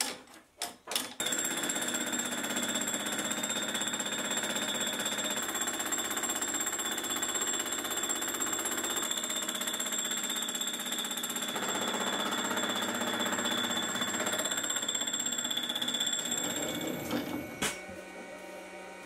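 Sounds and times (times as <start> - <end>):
high-pitched machine whine: 16.2 - 19.0.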